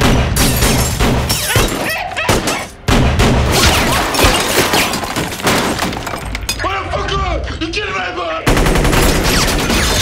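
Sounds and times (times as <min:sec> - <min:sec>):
glass bottles shattering: 0:00.4 - 0:02.7, 0:03.6 - 0:06.7
gunfire: 0:02.3 - 0:05.8.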